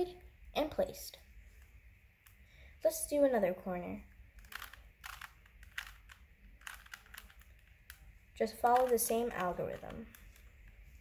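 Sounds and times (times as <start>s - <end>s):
puzzle cube clicking: 4.4s - 10.5s.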